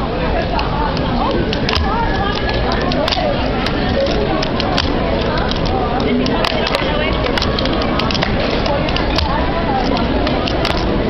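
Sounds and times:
fingerboard wheels clicking on cardboard: 1.5s - 11.0s.

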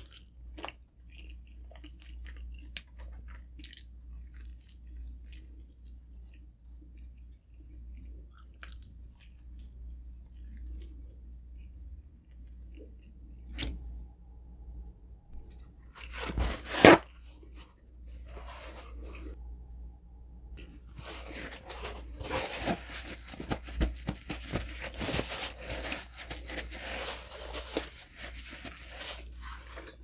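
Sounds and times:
paper towel rustling: 16.0s - 17.1s, 21.0s - 30.0s
paper towel ripping: 16.0s - 17.2s, 21.1s - 30.0s.

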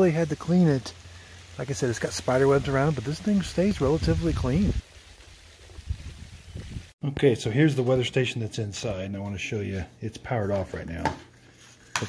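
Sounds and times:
wind rumbling on microphone: 3.3s - 7.0s.

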